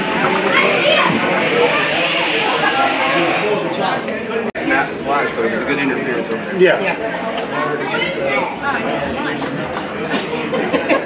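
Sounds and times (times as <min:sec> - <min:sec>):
many voices shouting and calling: 0:00.0 - 0:11.0.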